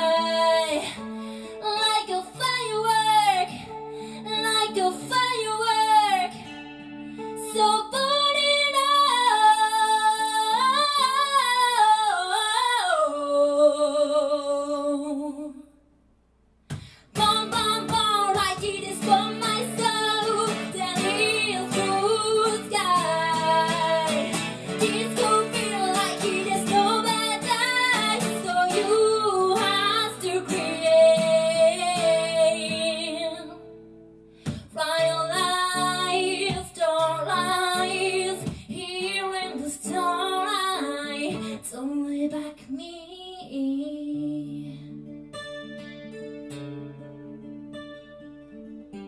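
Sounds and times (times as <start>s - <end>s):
woman singing: 0.0s - 6.6s, 7.2s - 15.8s, 17.0s - 33.7s, 34.5s - 45.0s
strummed acoustic guitar: 0.0s - 11.3s, 16.7s - 41.8s, 44.7s - 49.0s.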